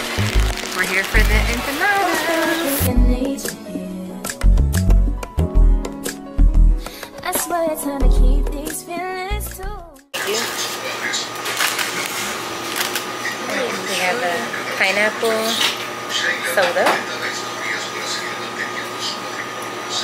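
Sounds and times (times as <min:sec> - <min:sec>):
machine hum: 0:00.0 - 0:03.2
background music: 0:00.0 - 0:10.1.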